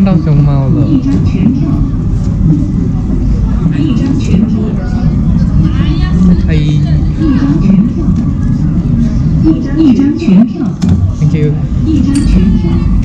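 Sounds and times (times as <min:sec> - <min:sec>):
people talking: 0:00.0 - 0:13.0
steady low rumble: 0:00.0 - 0:13.0.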